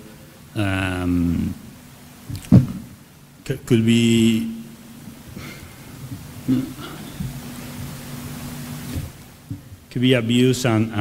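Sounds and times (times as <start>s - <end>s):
faint steady hum: 0.0s - 11.0s
man speaking: 0.6s - 1.6s, 3.4s - 4.7s, 9.9s - 11.0s
low thumps: 2.2s - 3.0s, 8.8s - 9.9s.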